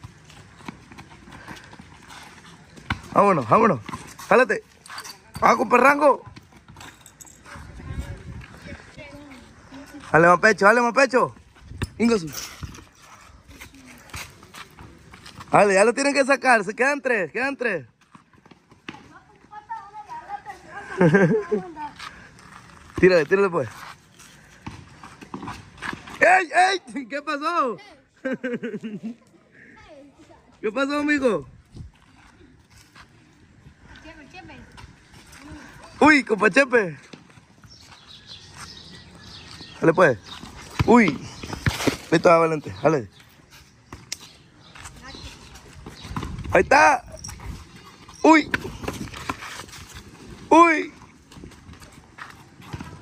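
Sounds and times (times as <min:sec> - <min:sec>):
sneakers slapping on street: 0:00.0 - 0:04.8, 0:06.1 - 0:15.9, 0:17.9 - 0:26.3, 0:33.8 - 0:53.0.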